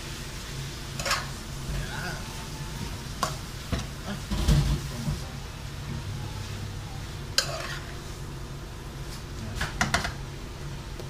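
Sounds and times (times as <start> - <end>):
faint sizzle: 0.0 - 11.0
metal spatula scraping frying pan: 1.0 - 1.4, 7.3 - 8.1.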